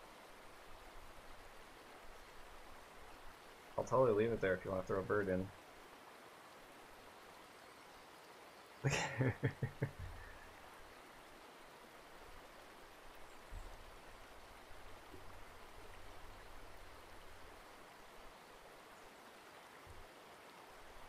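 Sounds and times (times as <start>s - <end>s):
faint steady hiss: 0.0s - 21.0s.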